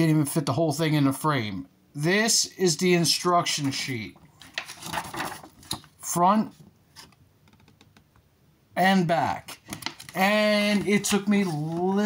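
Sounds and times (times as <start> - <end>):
paper rustling and crinkling: 4.4 - 6.0, 9.6 - 12.0.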